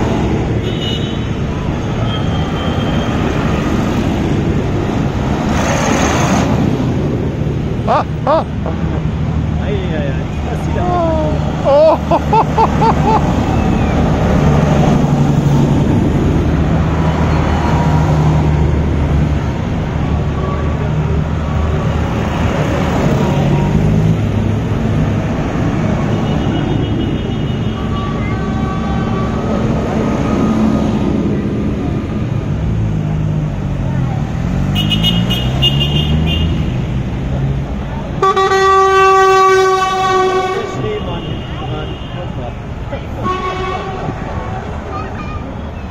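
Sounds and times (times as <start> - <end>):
long loud horn blast: 26.4 - 29.8, 38.2 - 42.0, 43.2 - 44.2
horn toots: 34.7 - 36.8, 38.2 - 42.2.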